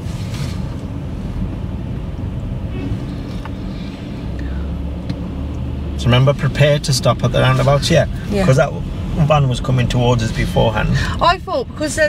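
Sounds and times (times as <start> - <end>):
car engine and road rumble: 0.0 - 12.0
low engine hum: 0.0 - 12.0.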